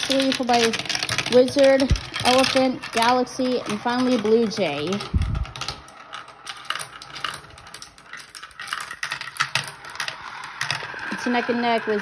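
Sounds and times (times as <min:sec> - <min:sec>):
marbles clattering through plastic track: 0:00.0 - 0:12.0.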